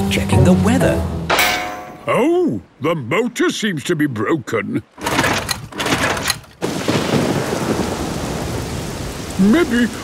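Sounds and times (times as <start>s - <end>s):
heavy rain: 4.9s - 10.0s
outboard motor pull-cord yanked: 5.0s - 6.6s
thunder: 6.6s - 9.1s.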